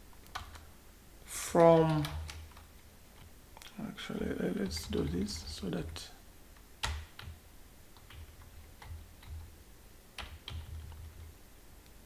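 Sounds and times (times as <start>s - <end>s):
keyboard keystrokes: 10.2s - 11.3s.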